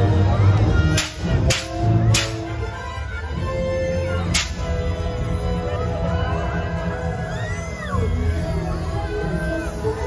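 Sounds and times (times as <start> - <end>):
parade music over speakers: 0.0 - 10.0
sharp crack: 0.9 - 2.6, 4.3 - 4.7.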